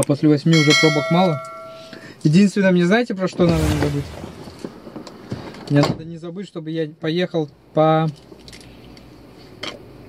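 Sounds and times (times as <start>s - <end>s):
short sharp sound: 3.4s - 5.1s
road and engine noise in car: 4.6s - 10.0s.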